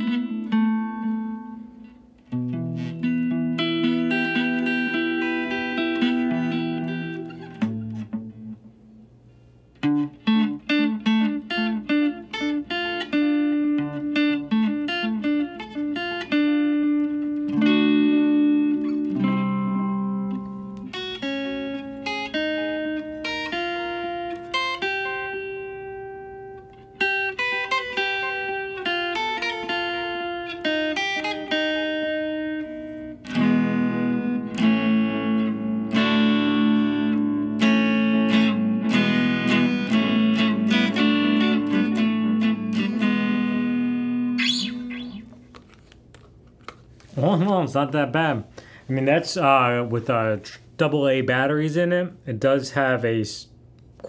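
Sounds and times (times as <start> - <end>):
electric guitar playing: 0.0 - 48.7.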